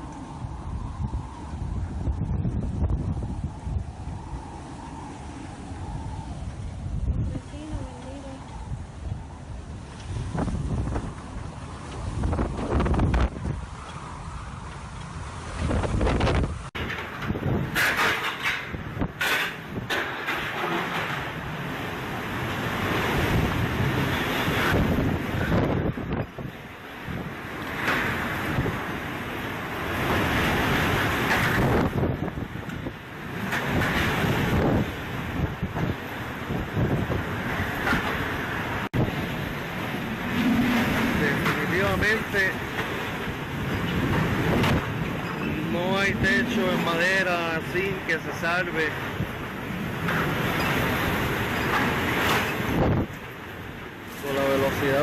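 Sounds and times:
driving rain: 0.0s - 55.0s
hurricane winds gusting: 0.0s - 55.0s
wind buffeting microphone: 0.0s - 55.0s.

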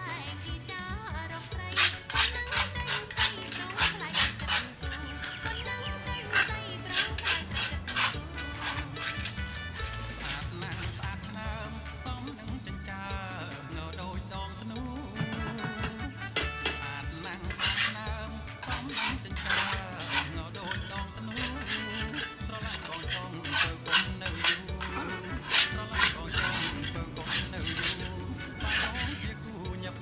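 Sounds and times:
quiet background music: 0.0s - 30.0s
objects clinking against plant pot: 18.6s - 28.0s.

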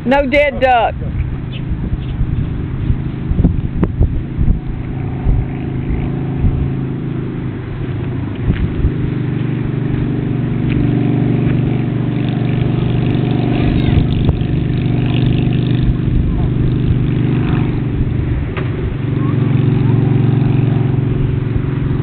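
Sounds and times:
engine running: 0.0s - 22.0s.

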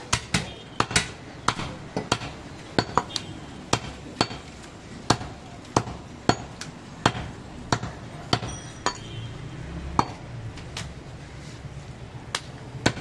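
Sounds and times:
cleaver chopping meat on wood: 0.0s - 4.5s, 5.1s - 8.5s, 12.3s - 13.0s.

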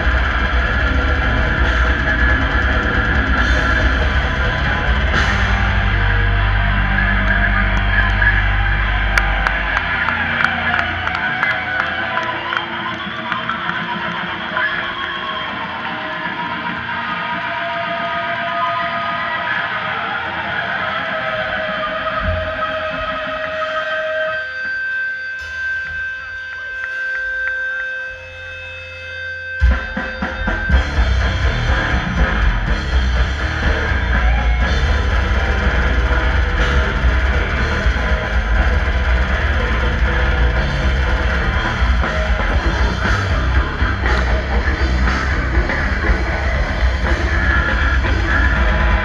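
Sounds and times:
death metal band playing live: 0.0s - 49.0s
distorted electric guitar: 0.0s - 49.0s.

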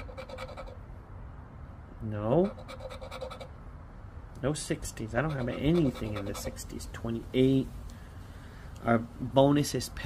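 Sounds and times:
scratching lottery ticket: 5.0s - 6.9s.

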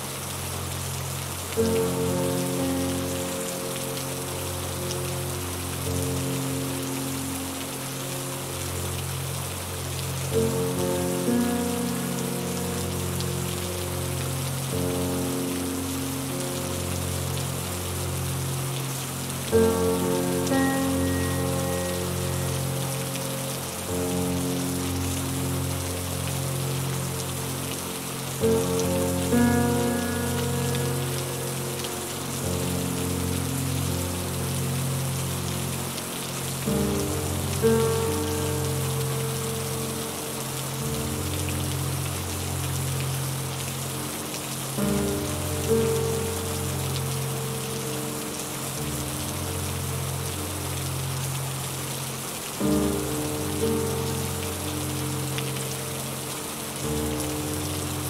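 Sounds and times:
soft ambient music: 0.0s - 58.0s
steady rain: 0.0s - 58.0s.

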